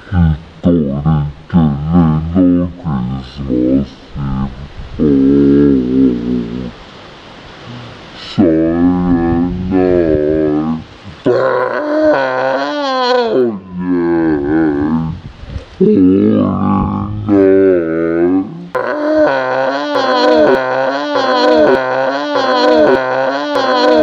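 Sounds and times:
person singing a cappella: 0.0s - 6.8s, 15.8s - 24.0s.

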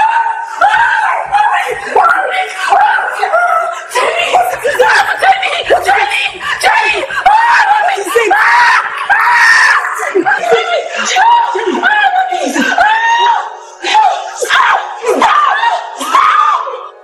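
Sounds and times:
women screaming and shouting: 0.0s - 17.0s.

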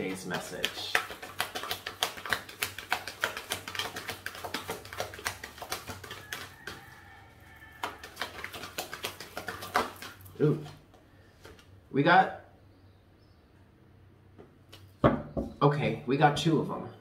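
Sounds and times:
cards being shuffled: 0.0s - 6.9s, 7.8s - 11.7s.

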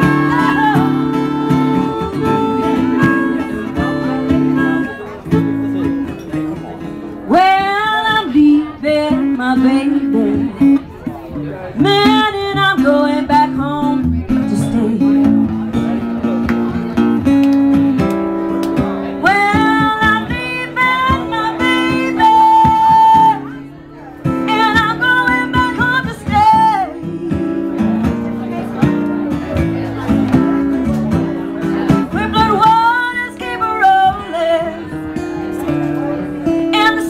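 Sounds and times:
person singing: 0.0s - 5.4s, 24.6s - 27.9s
acoustic guitar strumming: 0.0s - 37.0s.

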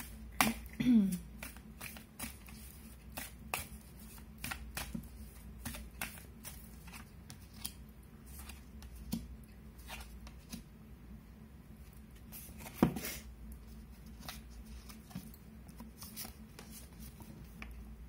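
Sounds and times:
cards being shuffled: 1.4s - 10.6s.

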